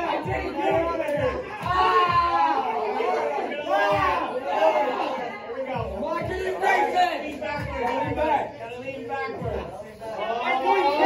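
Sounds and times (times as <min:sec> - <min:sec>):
background music with beat: 0:00.0 - 0:11.0
teenagers chattering: 0:00.0 - 0:11.0.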